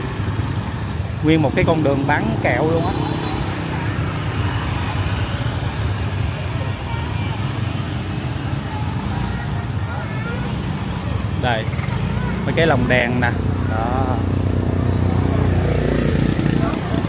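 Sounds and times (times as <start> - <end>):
scooter engines passing: 0.0 - 17.0
traffic hum: 0.0 - 17.0
faint background voices: 5.3 - 12.6.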